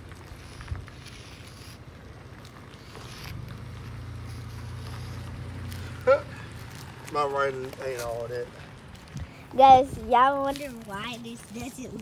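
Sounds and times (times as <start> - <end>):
chalk scratching on concrete: 0.0 - 8.4
vehicle engine rumble: 0.0 - 12.0.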